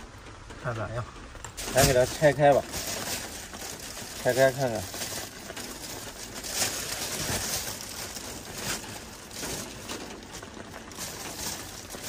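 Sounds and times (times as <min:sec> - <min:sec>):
plastic bag rustling and crinkling: 0:00.9 - 0:12.0.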